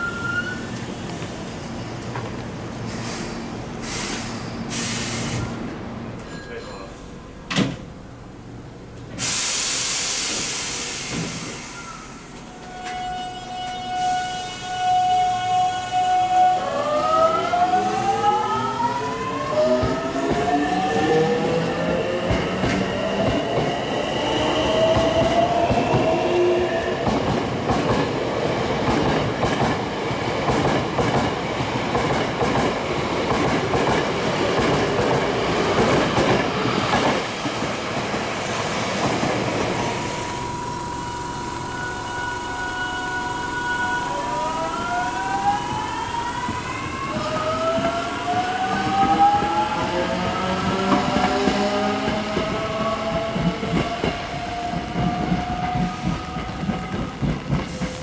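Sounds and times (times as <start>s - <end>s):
train wheels rolling: 19.5s - 58.0s
electric train inverter whine: 39.4s - 57.4s.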